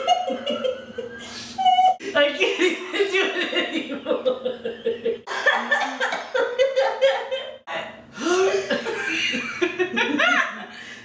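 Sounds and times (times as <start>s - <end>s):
women laughing hard: 0.0s - 2.0s, 2.6s - 10.8s.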